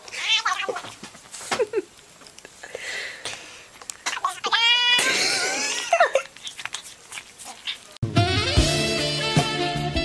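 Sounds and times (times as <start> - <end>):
animal cry: 4.0 - 5.2.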